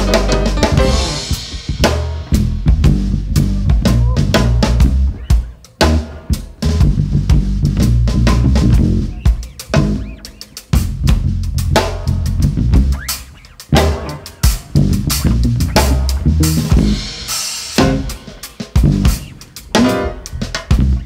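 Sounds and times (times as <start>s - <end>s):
drum kit and cymbals: 0.0s - 21.0s
electric bass line: 0.0s - 21.0s.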